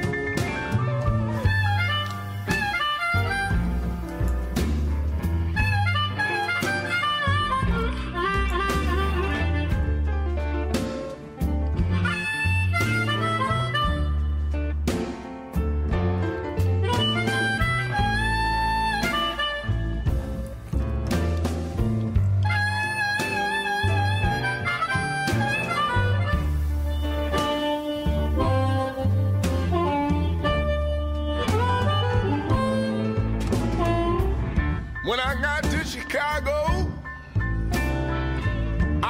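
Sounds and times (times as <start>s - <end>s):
harmonica wavering notes: 0.0s - 15.1s, 16.7s - 38.7s
bass and drums: 0.0s - 39.0s.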